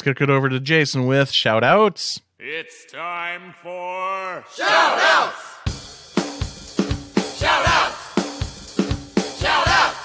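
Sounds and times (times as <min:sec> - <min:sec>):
group shouting a chant: 0:03.4 - 0:05.7, 0:07.3 - 0:08.2, 0:09.4 - 0:10.0
looped drum beat: 0:05.7 - 0:10.0.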